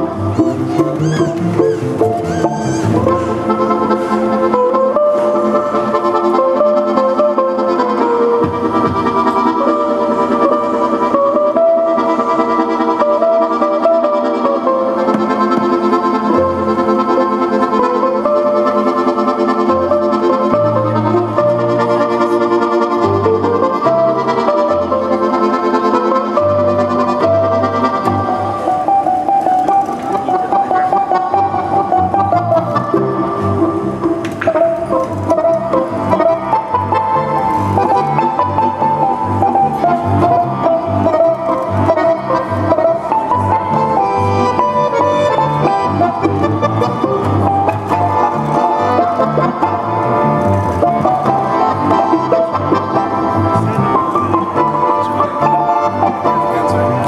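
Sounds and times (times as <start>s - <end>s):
accordion chords: 0.0s - 57.0s
plucked balalaika melody: 0.0s - 57.0s.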